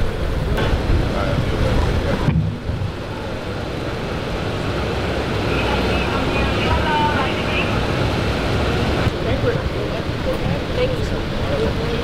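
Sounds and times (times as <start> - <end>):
city street rumble: 0.0 - 12.0
faint voices: 0.0 - 12.0.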